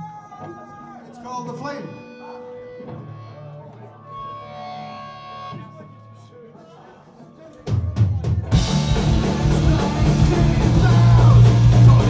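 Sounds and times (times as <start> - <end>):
punk rock band playing: 7.7 - 12.0.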